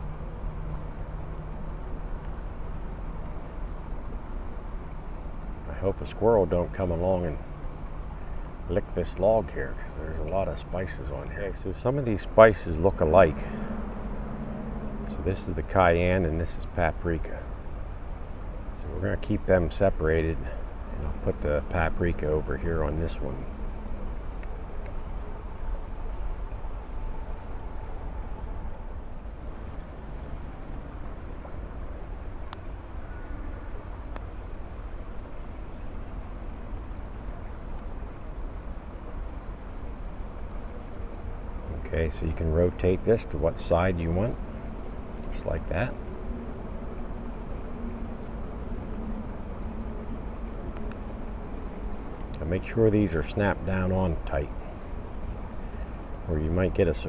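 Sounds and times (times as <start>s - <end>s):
low even hum: 0.0s - 57.0s
low outdoor rumble: 0.0s - 57.0s.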